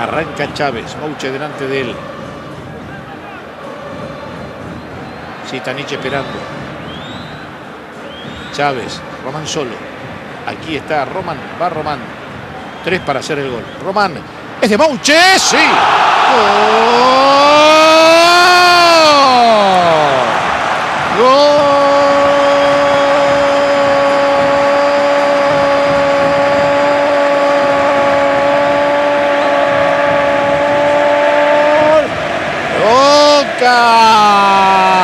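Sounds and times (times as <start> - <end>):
stadium crowd noise: 0.0 - 35.0
commentator shouting goal: 14.7 - 20.4, 21.1 - 32.1, 32.7 - 35.0.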